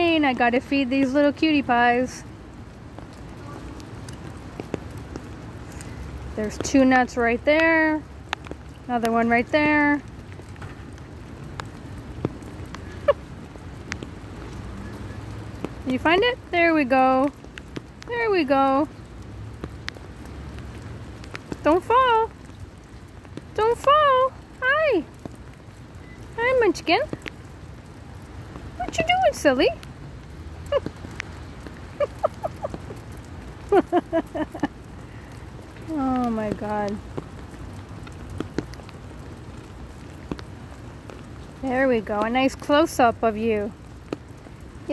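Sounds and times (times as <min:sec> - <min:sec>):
sharp water drips: 0:00.0 - 0:44.9
steady rain falling: 0:00.0 - 0:44.9
woman laughing softly: 0:31.9 - 0:32.9, 0:33.6 - 0:34.9.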